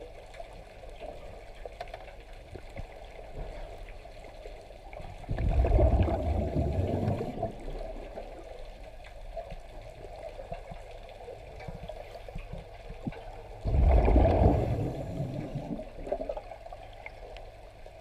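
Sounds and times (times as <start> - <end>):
muffled underwater ambience: 0.0 - 18.0
exhaled air bubbling from regulator: 5.1 - 8.4, 13.0 - 17.2.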